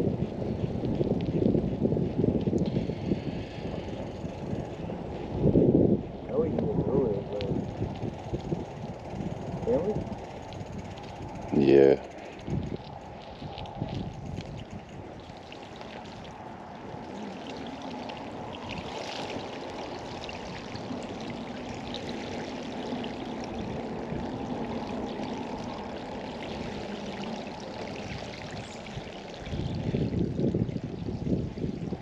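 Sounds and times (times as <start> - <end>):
bicycle tyres splashing through water: 0.0 - 6.3, 7.2 - 32.0
wind rumble on microphone: 0.0 - 32.0.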